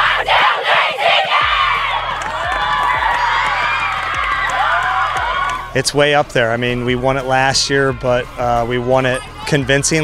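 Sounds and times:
girls shouting and cheering: 0.0s - 5.7s, 9.0s - 9.6s
background music with steady beat: 1.3s - 10.0s.

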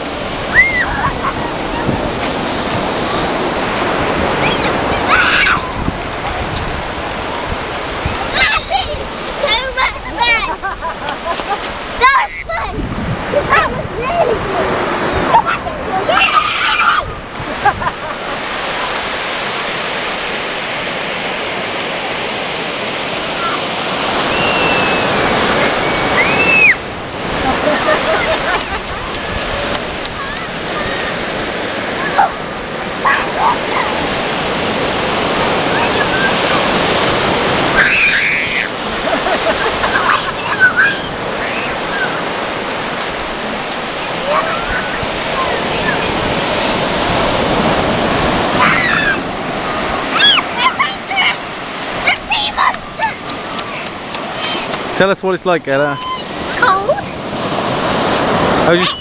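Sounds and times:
sea waves breaking on beach: 0.0s - 59.0s.

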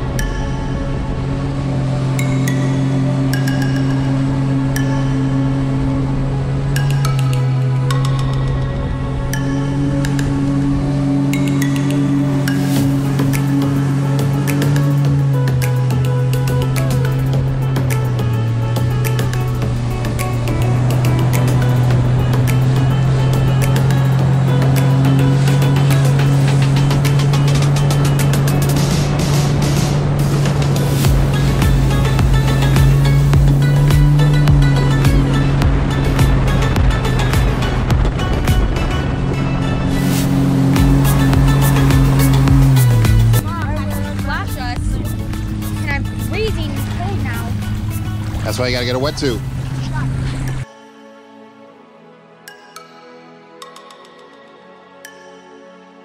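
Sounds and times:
jet ski engine drone: 0.0s - 50.7s
wind: 0.0s - 51.0s
background music: 0.0s - 56.0s
water spray: 11.8s - 37.8s, 39.9s - 44.3s
voices: 43.4s - 50.6s.

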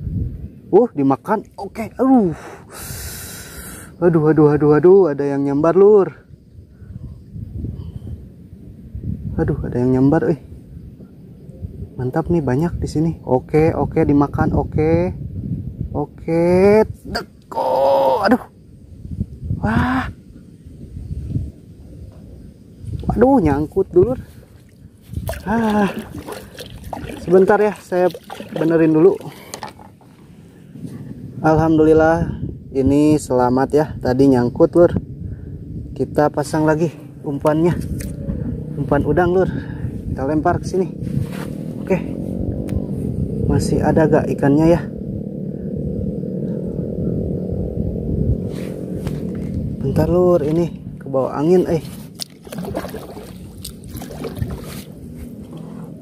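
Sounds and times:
wind rumbling on microphone: 0.0s - 56.0s
low motor hum: 23.8s - 31.3s, 40.0s - 51.1s, 52.0s - 56.0s.

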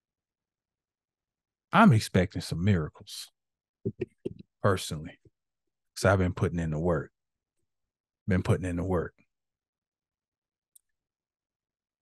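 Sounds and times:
man speaking: 4.6s - 5.2s, 8.3s - 9.1s.

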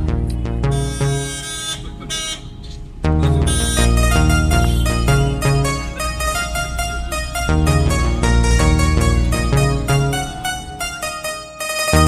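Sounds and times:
background music: 0.0s - 12.0s
road and traffic noise: 0.0s - 12.0s.

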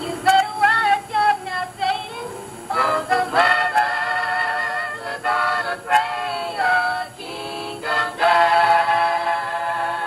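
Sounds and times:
gospel singing: 0.0s - 10.0s.

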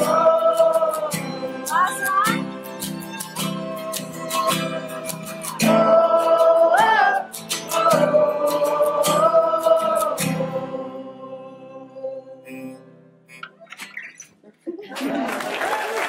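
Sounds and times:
strummed acoustic guitars: 0.0s - 14.6s
violin melody: 0.2s - 6.1s.

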